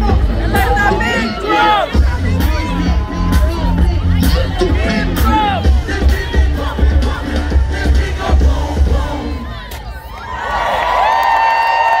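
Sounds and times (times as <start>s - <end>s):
bass-heavy hip-hop beat: 0.0s - 10.0s
crowd cheering and screaming: 0.6s - 6.5s, 9.2s - 12.0s.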